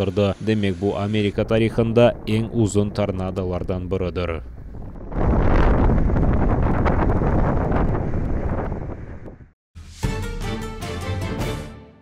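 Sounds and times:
strong wind blasting microphone: 0.6 - 9.6.

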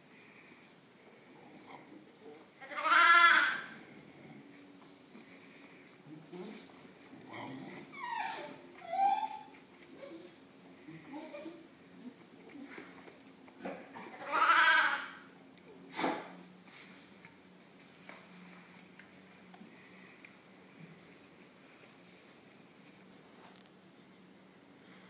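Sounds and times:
dog and lambs calling: 2.6 - 3.8, 14.0 - 15.2.

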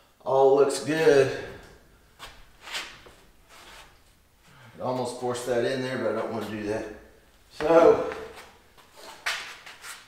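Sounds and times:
wood panel scuffing against wall: 7.6 - 10.0.

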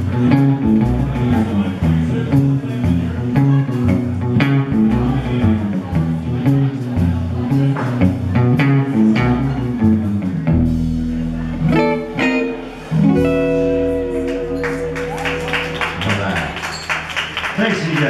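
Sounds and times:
drums: 0.0 - 16.0
electric guitar picked notes and chords: 0.0 - 16.2
bass guitar: 0.0 - 17.4.

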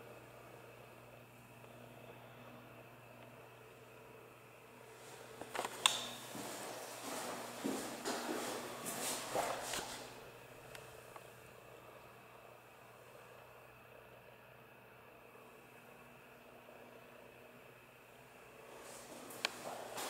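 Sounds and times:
steady low hum: 0.0 - 20.0
footsteps: 5.0 - 10.2, 18.8 - 20.0.

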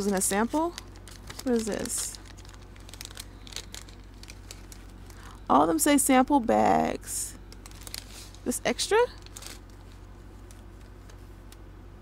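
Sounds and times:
paper bag crinkling: 0.0 - 5.4, 7.5 - 11.4.

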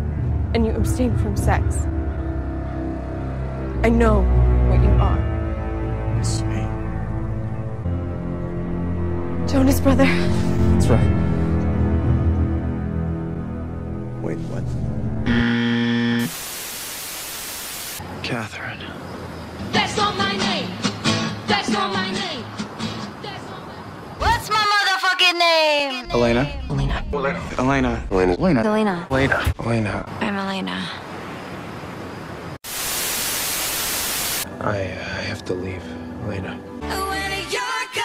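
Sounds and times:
held buzzing tone: 15.2 - 18.0
static white noise hiss: 16.1 - 18.0, 31.1 - 34.5.

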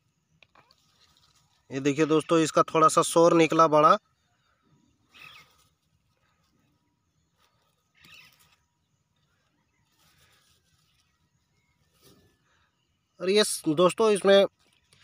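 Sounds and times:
faint rustles of grass: 0.0 - 2.8, 4.0 - 15.0.

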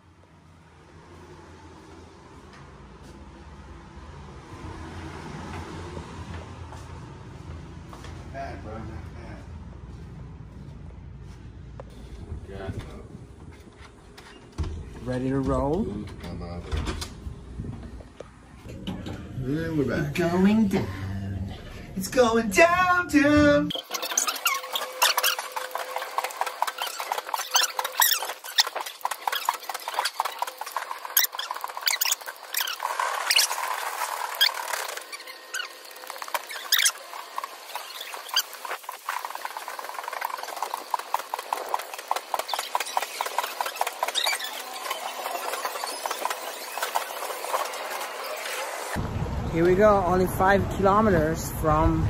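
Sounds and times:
cart wheels rattling on concrete: 23.7 - 49.0.

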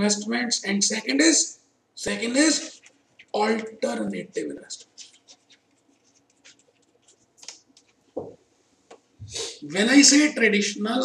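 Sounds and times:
marker pen scratching on paper: 4.6 - 8.1.

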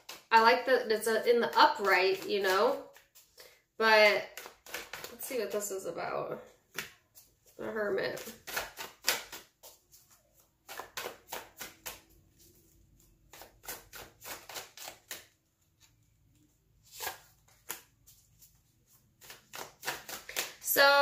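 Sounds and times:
cards being shuffled: 0.0 - 0.3, 1.7 - 3.4, 4.2 - 5.6, 6.7 - 20.6.

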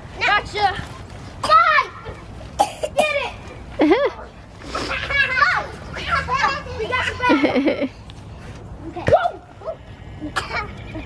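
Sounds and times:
children shouting and squealing: 0.2 - 11.0.

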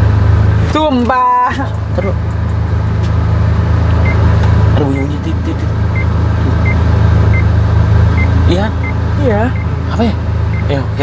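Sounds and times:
engine idling hum: 0.0 - 11.0
car warning chime beeping: 4.0 - 4.2, 5.9 - 7.5, 8.2 - 9.8, 10.5 - 10.8.

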